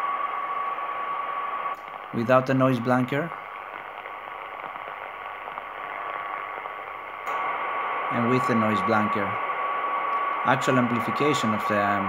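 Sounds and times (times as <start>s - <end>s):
faint steady radio tone: 0.0s - 12.0s
pulsating radio interference: 0.0s - 12.0s
radio band noise hiss: 0.0s - 12.0s.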